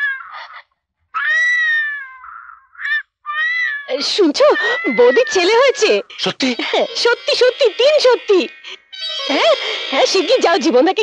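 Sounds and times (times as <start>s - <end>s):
newborn baby crying: 1.2s - 10.6s.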